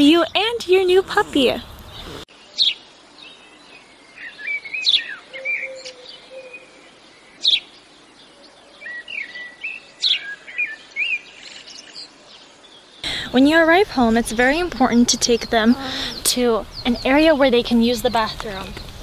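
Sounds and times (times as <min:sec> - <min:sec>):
small birds chirping: 0:00.0 - 0:19.0.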